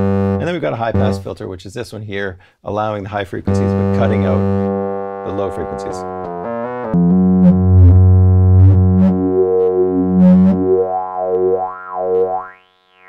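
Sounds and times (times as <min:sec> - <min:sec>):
synthesizer bass with filter sweep: 0:00.0 - 0:01.2, 0:03.5 - 0:12.6.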